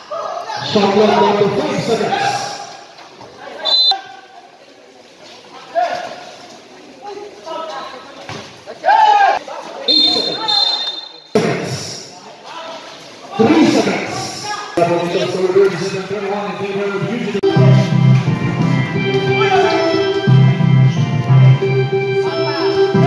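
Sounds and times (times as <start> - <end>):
players shouting: 0.4 - 2.8
referee's whistle blast: 3.6 - 4.0, 9.9 - 11.4.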